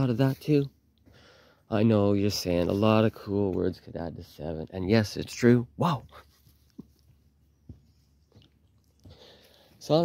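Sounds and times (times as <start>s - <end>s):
man speaking loudly: 1.7s - 6.2s.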